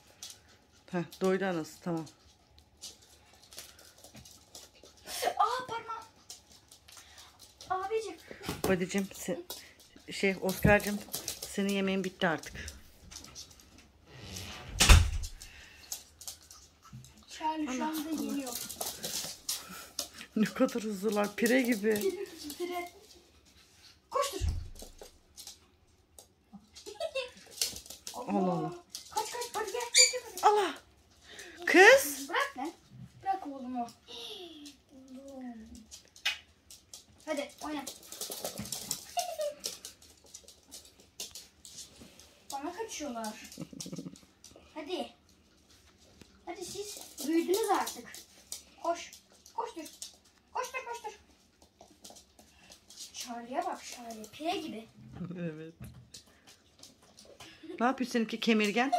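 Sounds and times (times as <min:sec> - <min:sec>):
puppies scuffling on laminate floor: 0:00.0 - 0:58.9.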